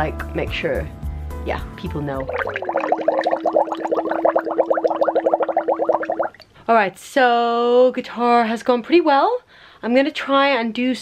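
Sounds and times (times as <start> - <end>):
water bubbling in a glass: 2.1 - 6.6.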